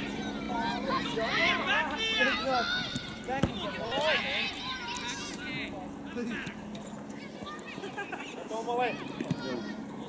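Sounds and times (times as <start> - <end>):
voices shouting: 0.0 - 6.6.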